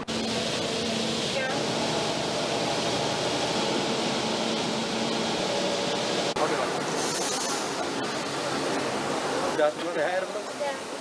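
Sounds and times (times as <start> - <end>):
air-conditioning rushing: 0.0 - 10.0.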